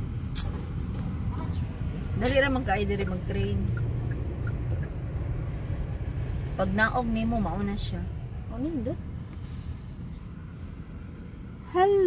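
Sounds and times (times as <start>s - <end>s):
car rumble from inside cabin: 0.0s - 12.0s.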